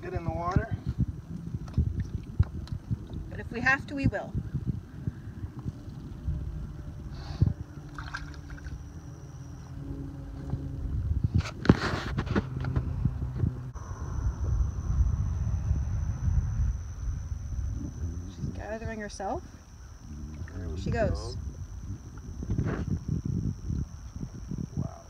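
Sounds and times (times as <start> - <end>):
low rumble: 0.0 - 25.0
shallow water lapping and splashing: 7.8 - 8.8.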